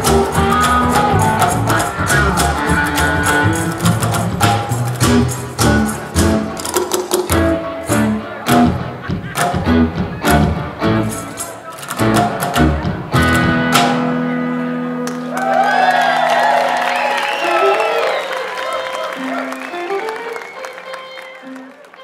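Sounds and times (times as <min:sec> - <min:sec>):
string band playing rhythmic groove: 0:00.0 - 0:15.3, 0:18.8 - 0:22.0.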